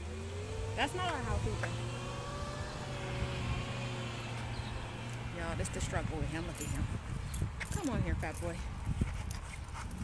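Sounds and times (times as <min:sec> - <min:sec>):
engine hum: 0:00.0 - 0:08.9.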